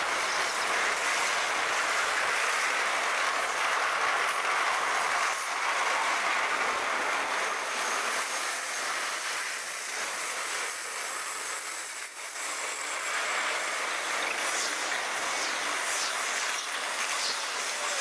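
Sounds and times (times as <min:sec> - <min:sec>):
freight train wheels on rails: 0:00.0 - 0:18.0.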